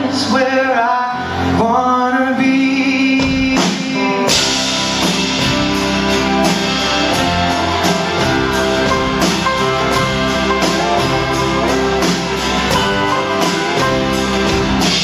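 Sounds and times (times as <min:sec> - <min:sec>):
man singing: 0:00.0 - 0:04.6
live rock band playing: 0:00.0 - 0:15.0.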